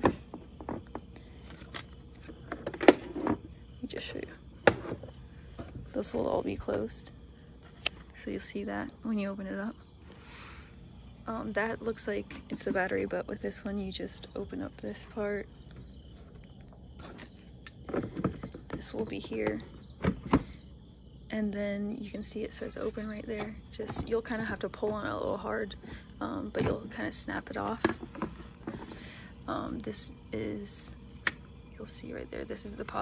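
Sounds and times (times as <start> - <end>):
plastic parts clicking and knocking: 17.0 - 19.4.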